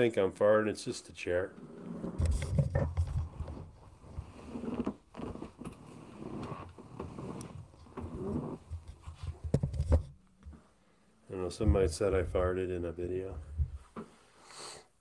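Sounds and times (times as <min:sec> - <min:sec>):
chair creaking and groaning: 0:01.4 - 0:10.2.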